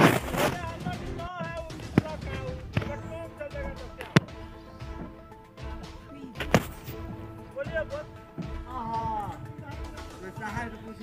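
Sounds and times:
sharp thumps: 0.0s - 10.2s.

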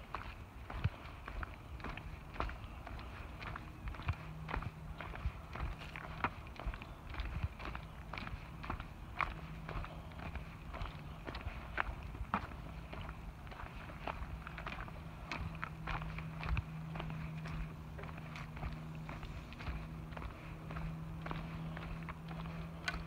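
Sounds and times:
footsteps on dry leaves and twigs: 0.0s - 23.0s.

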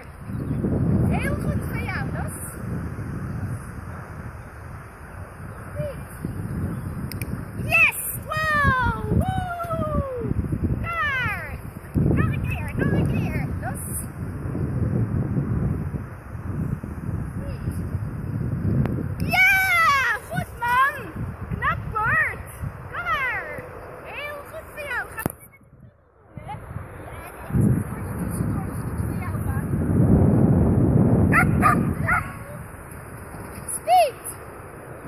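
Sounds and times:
wind rumbling on microphone: 0.0s - 35.0s
sharp click: 7.0s - 7.3s, 25.2s - 25.5s.

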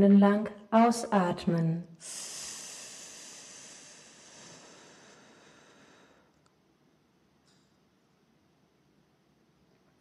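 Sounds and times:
slow breath out into microphone: 2.0s - 6.3s.

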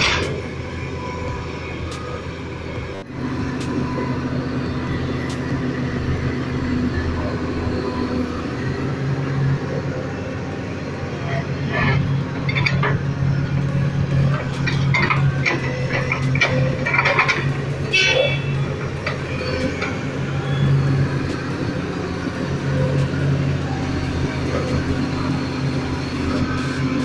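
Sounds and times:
excavator diesel engine running: 0.0s - 27.0s
knocks and clatter: 11.9s - 13.2s, 14.1s - 17.8s.

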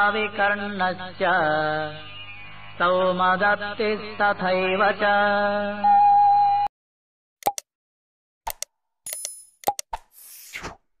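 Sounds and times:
sharp mouse clicks: 7.4s - 7.6s, 8.5s - 10.8s
brief swoosh: 10.1s - 10.8s.

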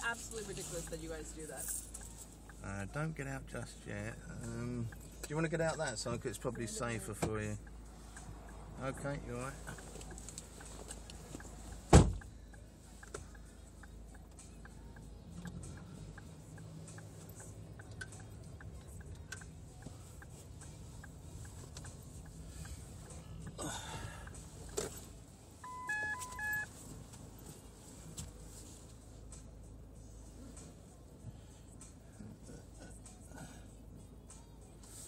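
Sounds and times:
car engine running: 0.0s - 34.6s
car door slamming: 11.9s - 12.2s
short electronic beeps: 25.6s - 26.7s.

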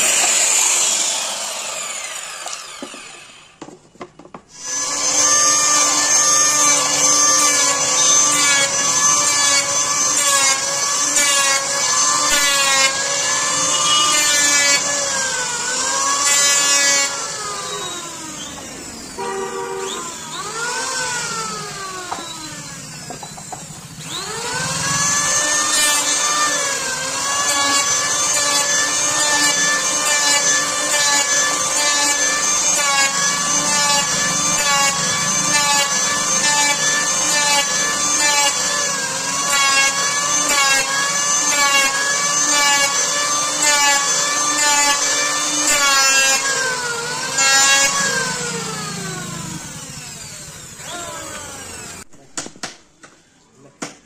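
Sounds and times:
electric planer whining: 0.0s - 52.1s.

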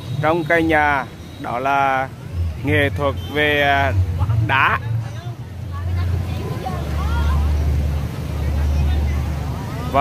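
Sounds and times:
faint scattered voices: 1.4s - 10.0s.

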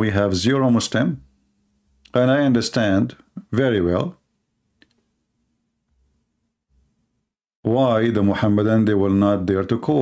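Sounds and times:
man speaking: 0.0s - 1.3s, 2.1s - 4.2s, 7.7s - 10.0s
faint low hum: 0.0s - 10.0s
faint click: 4.8s - 5.1s.

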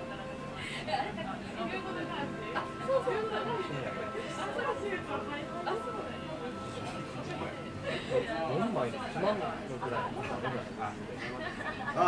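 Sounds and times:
indistinct conversation: 0.0s - 12.0s
quiet background music: 0.0s - 12.0s.

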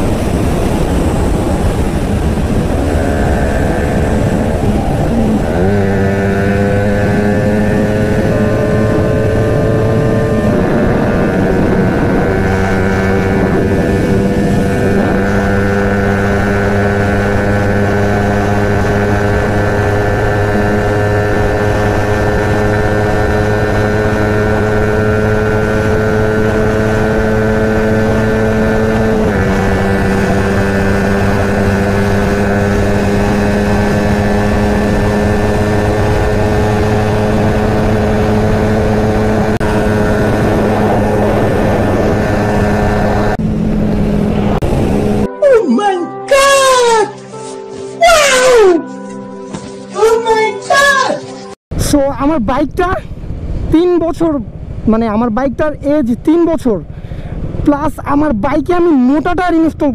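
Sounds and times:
motorcycle engine at high revs: 0.0s - 45.4s
music: 45.3s - 51.6s
speech: 51.8s - 53.1s, 53.7s - 56.8s, 57.7s - 59.9s.

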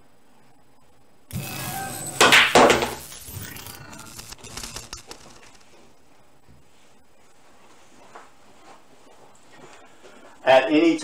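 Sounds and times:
pool balls cracking together: 1.3s - 3.0s.

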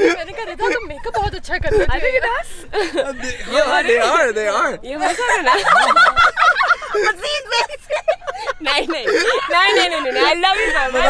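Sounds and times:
women laughing loudly: 0.0s - 4.0s, 5.0s - 11.0s.

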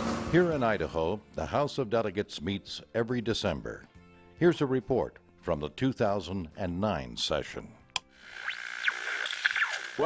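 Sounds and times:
electronic music: 8.2s - 10.0s.

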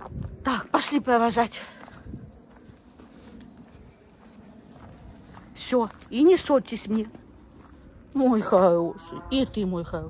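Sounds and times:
faint footsteps on dirt: 0.0s - 10.0s.

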